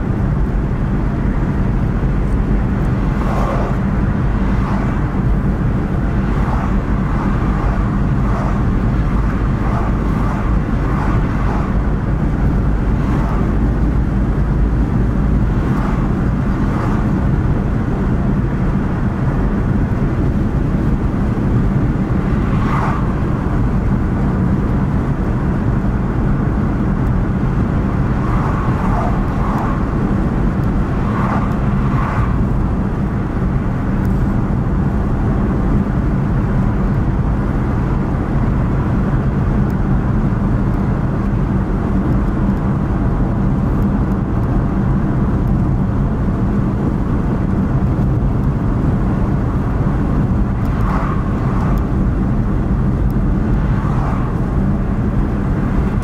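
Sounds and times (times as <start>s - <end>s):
car engine hum: 0.0s - 56.0s
tyre and road rumble: 0.0s - 56.0s.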